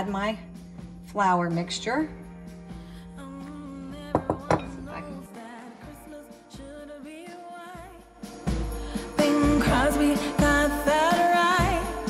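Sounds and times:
background music with singing: 0:00.0 - 0:12.0
ceramic bowls knocking: 0:04.1 - 0:05.2.

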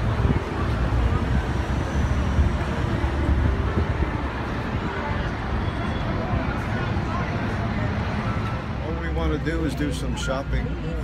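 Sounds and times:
bus engine rumbling: 0:00.0 - 0:11.0
street traffic: 0:00.0 - 0:11.0.

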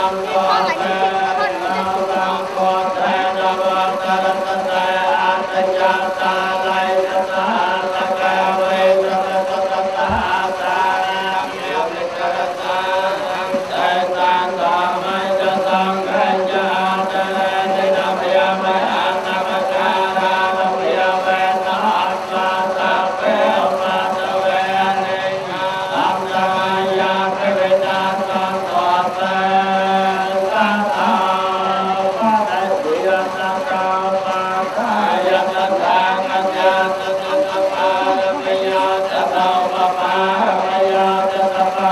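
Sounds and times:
monks chanting in unison: 0:00.0 - 0:41.9.

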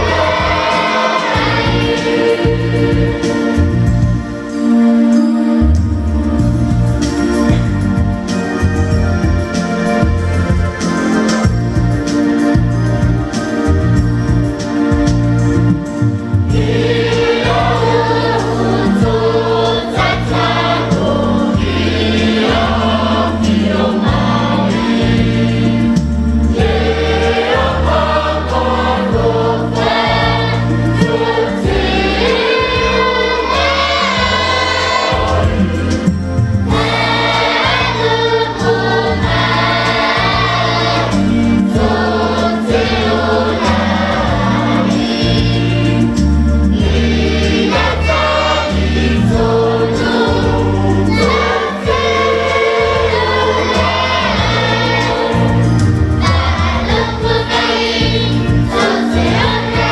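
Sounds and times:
choir singing a hymn in harmony: 0:00.0 - 0:59.9.

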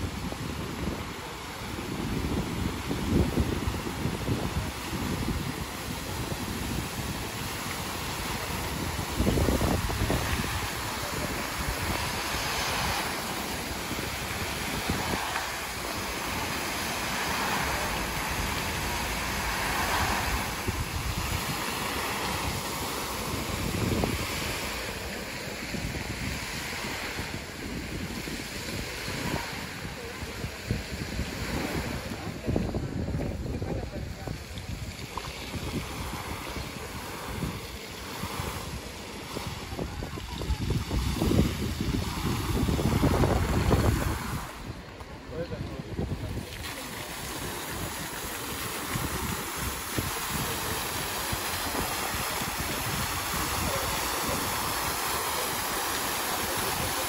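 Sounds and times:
fountain water splashing: 0:00.0 - 0:57.0
wind buffeting microphone: 0:00.0 - 0:57.0.

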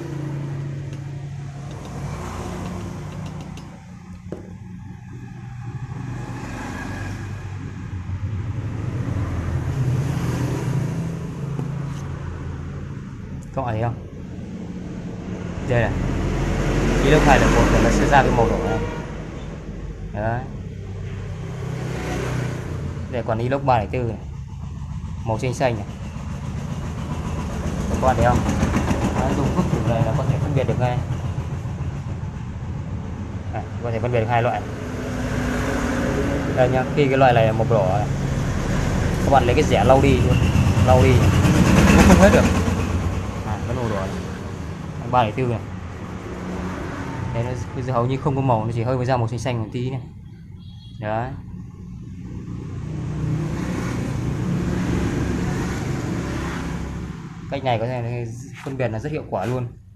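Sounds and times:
vehicle engine running: 0:00.0 - 0:47.6
road noise: 0:00.0 - 0:59.9.

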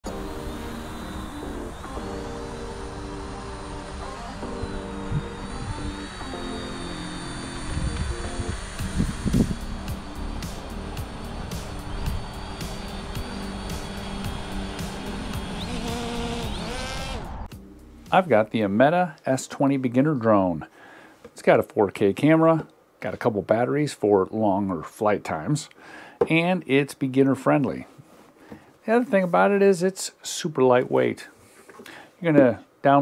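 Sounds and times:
ticking beat: 0:00.0 - 0:16.9
drone propellers whining: 0:00.0 - 0:17.6
background music with sustained chords: 0:00.0 - 0:19.1.

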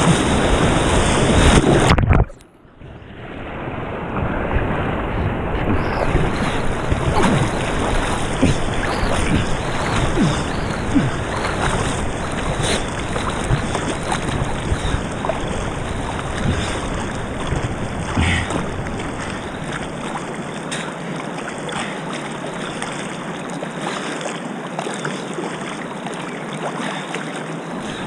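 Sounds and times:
paddle splashes: 0:00.0 - 0:02.2, 0:03.5 - 0:28.0
wind rumble on microphone: 0:00.0 - 0:20.4
river water flowing: 0:00.0 - 0:28.0.

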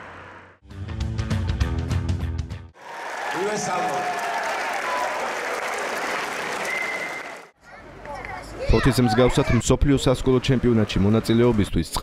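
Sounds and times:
crowd applauding: 0:02.8 - 0:07.6
voices calling out: 0:06.4 - 0:11.6.

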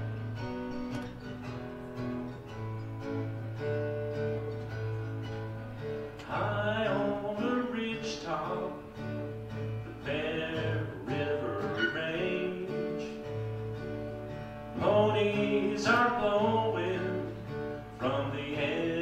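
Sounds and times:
acoustic guitar strumming: 0:00.0 - 0:19.0
man singing: 0:06.2 - 0:13.6, 0:14.7 - 0:19.0.

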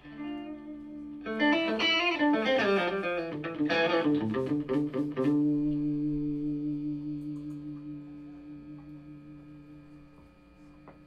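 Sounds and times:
electric guitar note ringing: 0:00.0 - 0:11.0.

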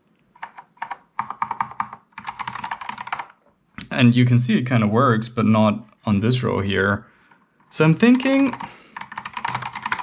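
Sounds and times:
keyboard keys clicking: 0:00.4 - 0:03.4, 0:08.2 - 0:10.0.

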